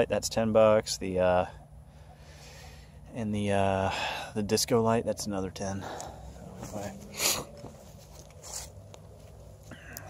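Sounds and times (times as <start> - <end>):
soft breaths: 1.6 - 3.1, 5.7 - 10.0
man speaking: 3.1 - 7.6
footsteps on grass: 6.3 - 9.7.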